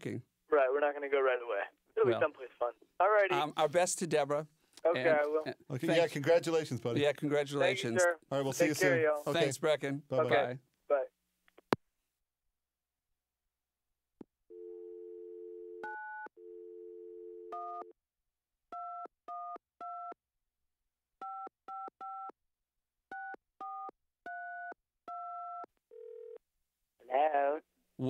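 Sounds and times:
dial tone: 14.5 - 17.9, 23.1 - 26.4.

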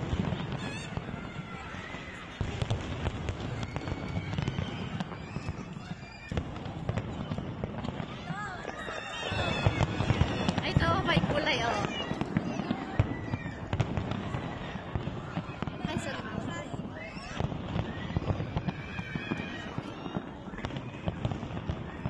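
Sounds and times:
fireworks booms and cracks: 0.0 - 22.0.

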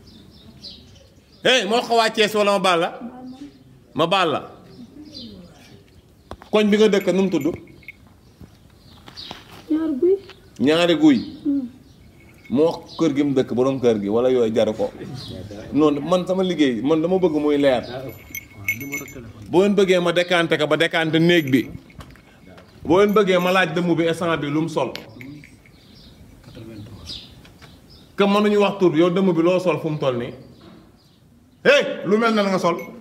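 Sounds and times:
metallic clinking and jingling: 6.5 - 9.3, 11.8 - 13.5, 17.2 - 27.4, 32.4 - 33.0
thin high ringing: 6.6 - 8.3, 11.7 - 13.3, 17.2 - 26.6, 32.4 - 33.0
man speaking loudly: 31.6 - 33.0.

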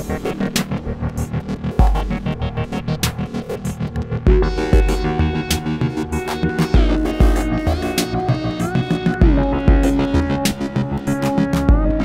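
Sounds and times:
held synth chords: 0.0 - 12.0
quick ticking drum machine rhythm: 0.0 - 12.0
deep bass kicks: 4.3 - 5.3, 6.8 - 7.8, 9.2 - 10.3, 11.7 - 12.0.

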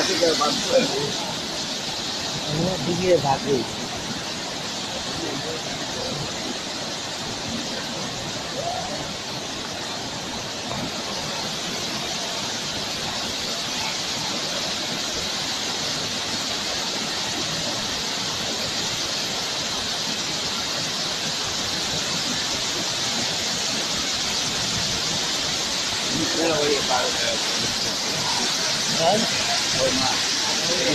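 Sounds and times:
waterfall rushing: 0.0 - 30.9.

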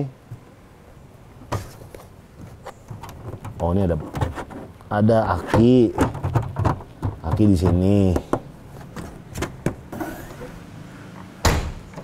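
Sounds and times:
car trunk lid slamming shut: 11.4 - 11.9.

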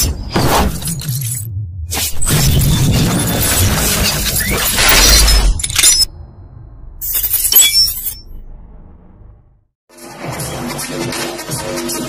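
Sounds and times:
glass shattering: 7.0 - 8.3
tinkling glass shards: 7.0 - 8.3.

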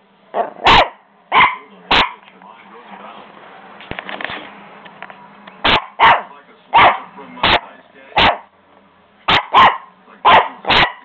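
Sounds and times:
puppy barking: 0.3 - 2.3, 5.6 - 8.5, 9.3 - 11.0.

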